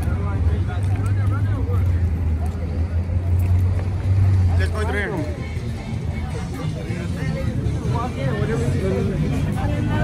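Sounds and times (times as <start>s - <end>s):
faint voices: 0.0s - 10.0s
low rumble of traffic: 0.0s - 10.0s.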